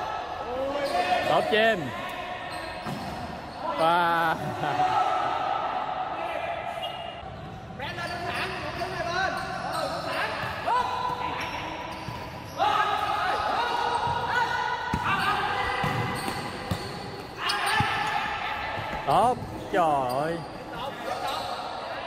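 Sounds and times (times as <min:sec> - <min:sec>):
shoes squeaking on boards: 0:02.4 - 0:03.7, 0:07.9 - 0:14.3, 0:15.1 - 0:21.8.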